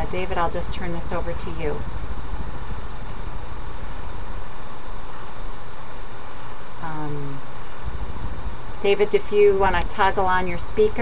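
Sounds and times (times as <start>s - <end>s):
open microphone rumble and hiss: 0.0s - 11.0s.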